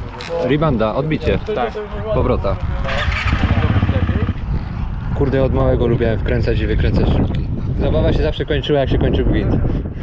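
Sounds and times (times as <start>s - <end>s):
motorcycle engine running: 2.7s - 4.6s.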